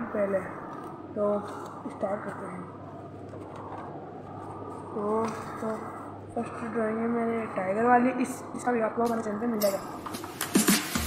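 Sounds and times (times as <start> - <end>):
low electrical hum: 0.0 - 10.7.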